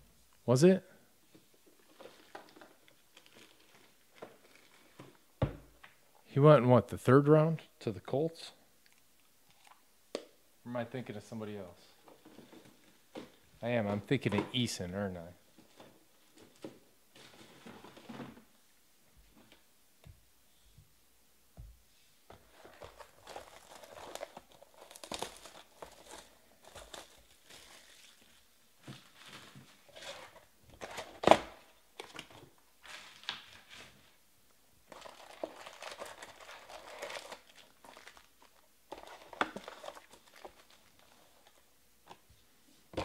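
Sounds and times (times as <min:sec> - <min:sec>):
plastic wrap crinkling and tearing: 0:01.7 - 0:05.2, 0:22.5 - 0:34.2, 0:34.8 - 0:41.7
foil packs rustling: 0:22.5 - 0:31.4, 0:34.9 - 0:41.6.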